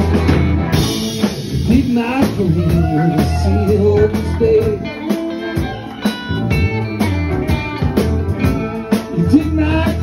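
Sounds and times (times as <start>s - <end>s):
electric guitar: 0.0s - 10.0s
live blues band playing: 0.0s - 10.0s.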